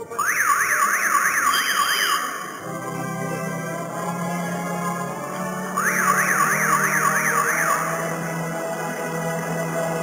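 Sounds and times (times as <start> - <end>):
sustained organ-like notes: 0.0 - 10.0
siren-like electronic warble: 0.2 - 2.6, 5.8 - 8.0.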